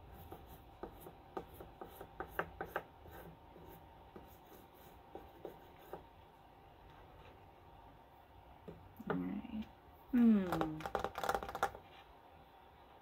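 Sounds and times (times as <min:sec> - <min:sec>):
chalk tapping on paper: 0:00.0 - 0:06.1.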